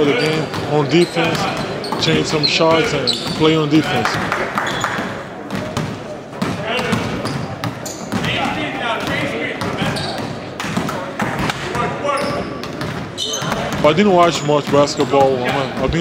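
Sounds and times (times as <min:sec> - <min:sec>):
basketballs bouncing on wooden floor: 0:00.0 - 0:16.0.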